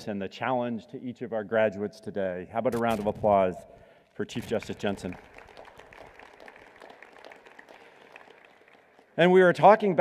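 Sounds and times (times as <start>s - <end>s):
faint audience applause: 4.3s - 9.6s.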